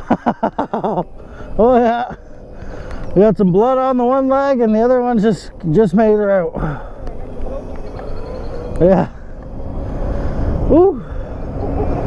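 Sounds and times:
man laughing: 0:00.0 - 0:02.2, 0:08.8 - 0:09.3.

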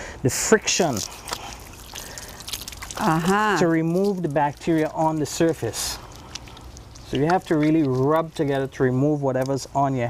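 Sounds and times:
water trickling onto hands: 0:00.6 - 0:10.0.

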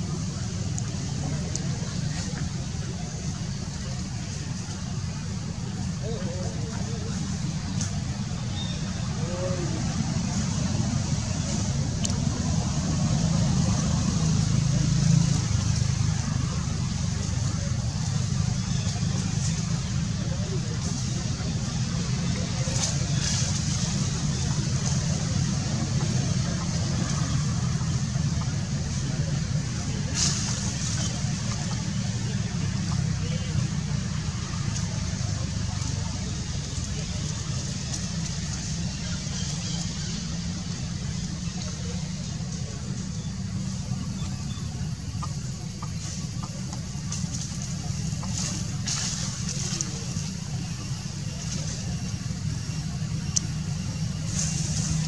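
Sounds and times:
faint voices: 0:00.0 - 0:55.0
low motor rumble: 0:00.0 - 0:55.0.

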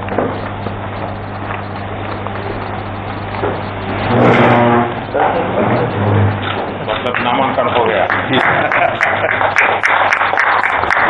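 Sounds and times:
low electrical hum with hiss: 0:00.0 - 0:11.0.

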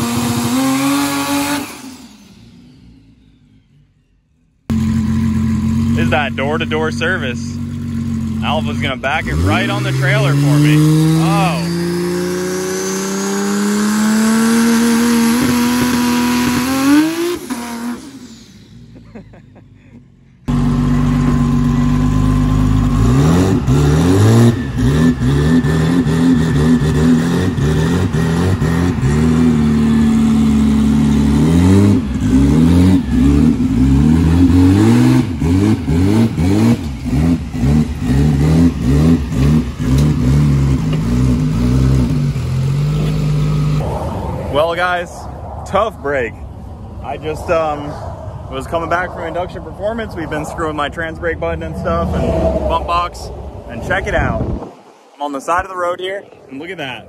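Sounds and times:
car engine revving: 0:00.0 - 0:19.7, 0:20.4 - 0:57.0
engine throttle blips: 0:00.0 - 0:54.8.

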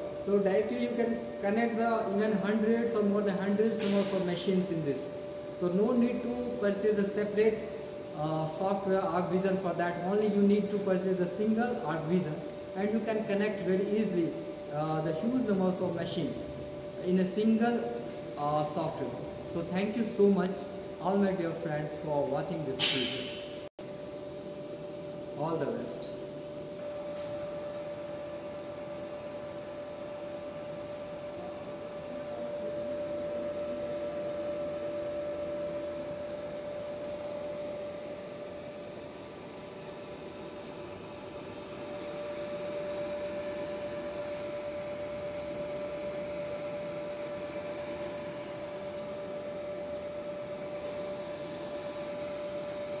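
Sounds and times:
steady mechanical hum: 0:00.0 - 0:53.0.

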